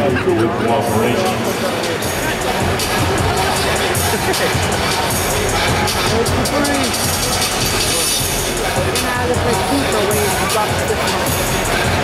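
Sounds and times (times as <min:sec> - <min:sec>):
crowd hubbub: 0:00.0 - 0:12.0
music over sound system: 0:00.0 - 0:12.0
person laughing: 0:03.8 - 0:05.0.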